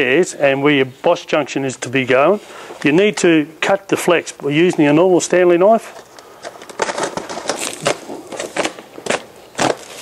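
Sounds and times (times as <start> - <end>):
knife cutting foil duct: 6.4 - 10.0.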